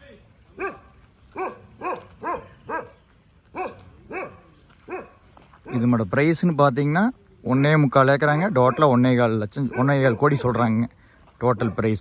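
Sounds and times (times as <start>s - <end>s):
dog barking: 0.6s - 5.9s, 8.6s - 9.0s, 9.6s - 10.8s.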